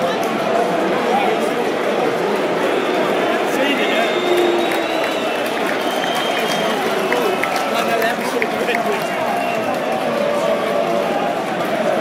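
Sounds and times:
stadium crowd din: 0:00.0 - 0:12.0
high whistles: 0:03.8 - 0:07.2.

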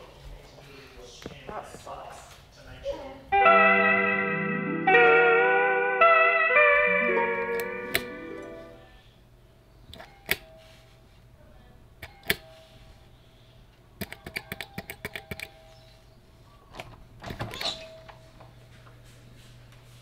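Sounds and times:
doorbell button clicks: 0:06.7 - 0:08.8
faint ringing chime: 0:10.4 - 0:11.0
door rattling open: 0:16.8 - 0:18.0.

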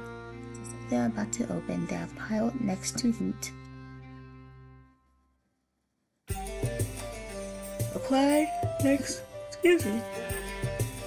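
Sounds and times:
sustained instrumental background music: 0:00.0 - 0:05.1, 0:06.3 - 0:11.0.

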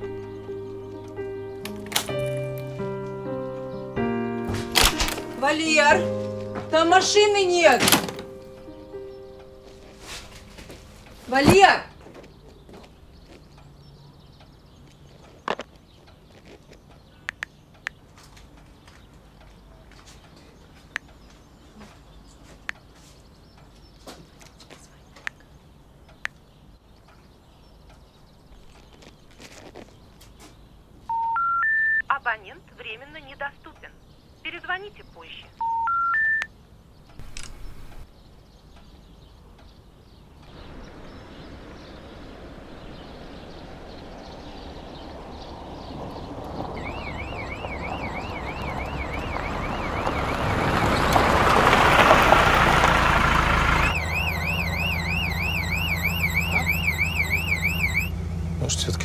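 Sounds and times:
car passing: 0:00.0 - 0:15.4, 0:40.3 - 0:59.0
recorded operator message: 0:06.7 - 0:08.0, 0:31.1 - 0:36.5
rising telephone tone beeps: 0:31.1 - 0:32.1, 0:35.6 - 0:36.5, 0:46.8 - 0:50.8, 0:53.8 - 0:58.1
car engine hum from inside: 0:40.5 - 0:59.0
warbling railway crossing alarm: 0:46.8 - 0:51.8, 0:53.5 - 0:58.5.

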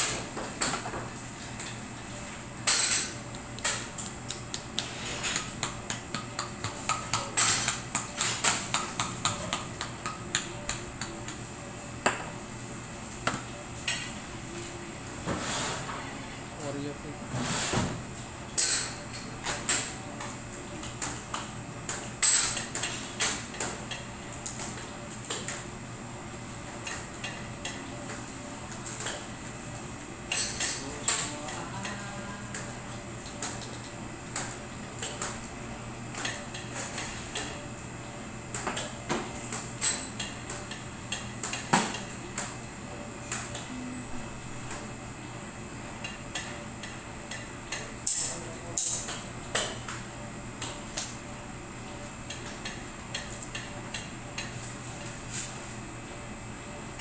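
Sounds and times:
utensils clinking against dishes: 0:02.6 - 0:04.1, 0:04.8 - 0:09.6, 0:18.5 - 0:20.0, 0:22.2 - 0:25.5, 0:30.3 - 0:34.0, 0:38.6 - 0:42.5, 0:46.0 - 0:49.9.

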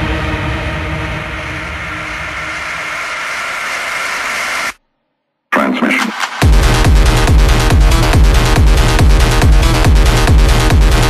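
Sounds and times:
dense hiss-like noise effect: 0:01.2 - 0:04.8.

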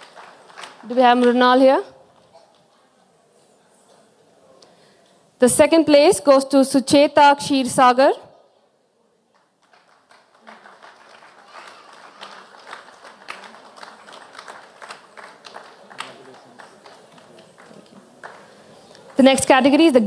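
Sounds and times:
audience applause: 0:00.0 - 0:01.4, 0:09.4 - 0:19.2.

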